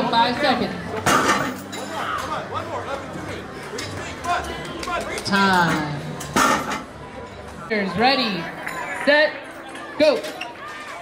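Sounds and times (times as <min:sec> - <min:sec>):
voices talking in echoing hall: 0:00.0 - 0:11.0.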